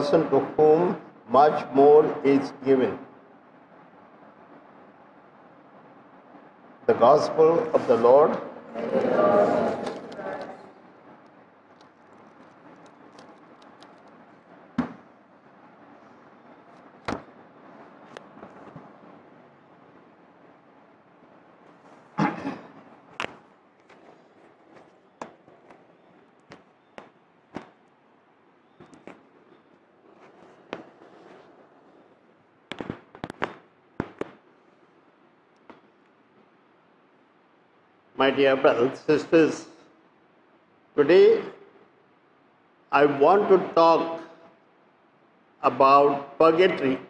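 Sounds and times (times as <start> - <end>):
faint room hiss: 0.0 - 47.0
book thud on wooden lectern: 14.8 - 15.0
sharp cracks: 21.6 - 28.0, 32.7 - 34.5.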